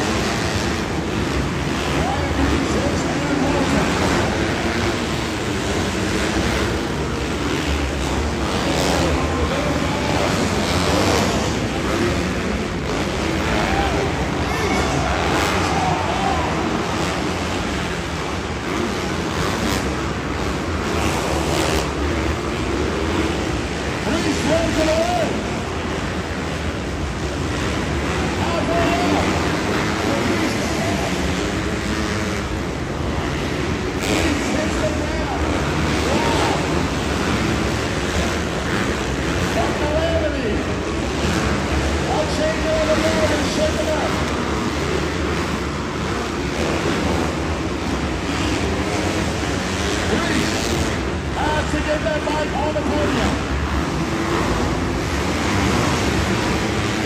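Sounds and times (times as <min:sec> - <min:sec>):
motocross bikes racing: 0:00.0 - 0:57.0.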